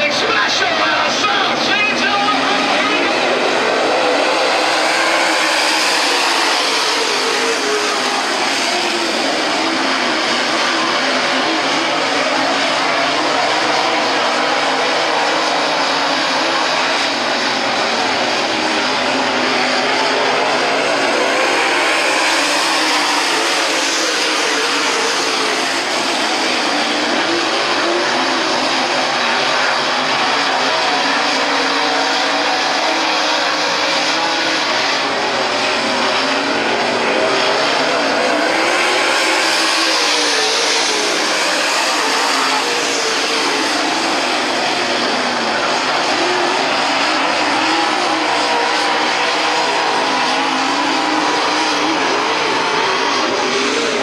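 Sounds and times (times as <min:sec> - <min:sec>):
race car engines roaring past: 0:00.0 - 0:54.0.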